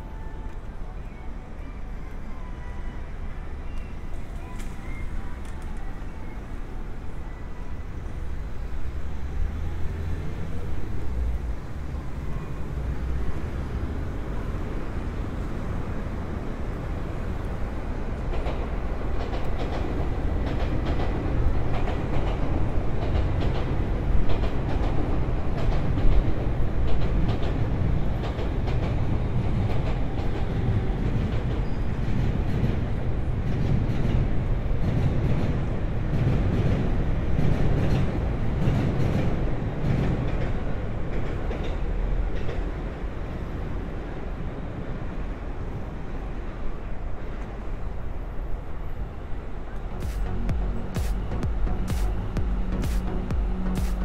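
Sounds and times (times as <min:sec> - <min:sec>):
train rumbling on viaduct: 0:00.0 - 0:54.0.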